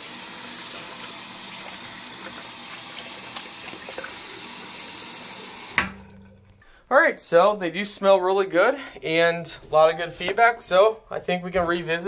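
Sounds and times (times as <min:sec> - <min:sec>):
tap water running into drain: 0:00.0 - 0:06.6.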